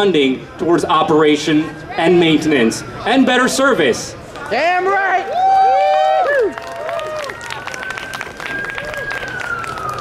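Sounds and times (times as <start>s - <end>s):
city street noise: 0.0s - 10.0s
crowd sound: 0.0s - 10.0s
siren wailing: 7.0s - 10.0s.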